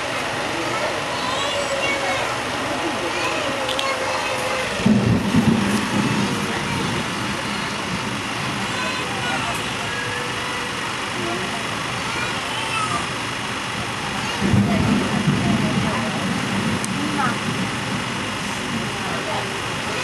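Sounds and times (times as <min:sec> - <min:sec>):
passengers talking: 0:00.0 - 0:20.0
railway carriage running noise: 0:00.0 - 0:20.0.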